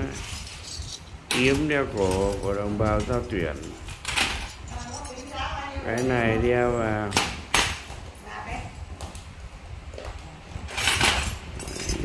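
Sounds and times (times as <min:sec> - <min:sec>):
metal bangles clinking: 0:00.0 - 0:06.4, 0:11.0 - 0:12.0.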